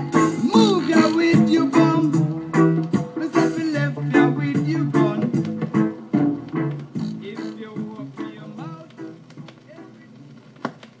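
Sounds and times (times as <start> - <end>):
reggae record playing: 0.0 - 11.0.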